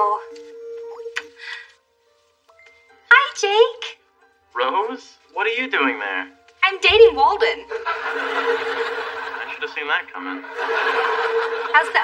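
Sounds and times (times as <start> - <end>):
studio audience laughing: 7.7 - 9.8, 10.4 - 12.0.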